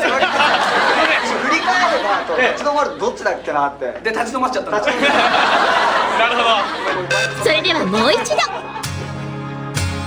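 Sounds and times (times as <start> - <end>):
men talking and calling out: 0.0 - 8.8.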